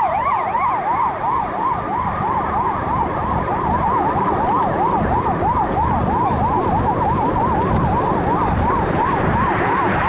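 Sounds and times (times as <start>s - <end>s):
emergency siren wailing: 0.0s - 10.0s
road and wind rumble: 0.0s - 10.0s
second siren sweep: 0.0s - 10.0s.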